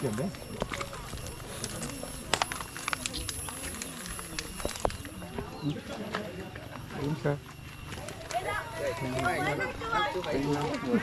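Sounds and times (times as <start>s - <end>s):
footsteps on dry debris: 0.0s - 11.0s.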